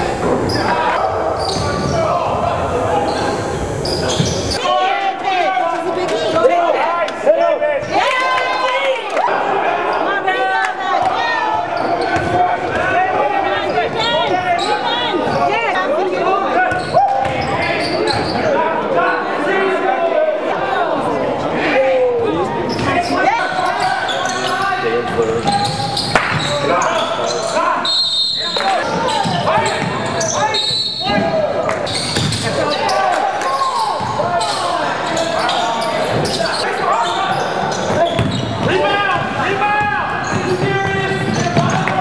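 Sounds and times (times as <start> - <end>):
voices calling out: 0.0 - 42.0
sneakers squeaking on court: 0.4 - 2.0, 3.1 - 4.6, 16.7 - 18.5, 22.6 - 33.0, 34.0 - 39.3, 40.1 - 42.0
basketball bouncing: 38.2 - 39.3.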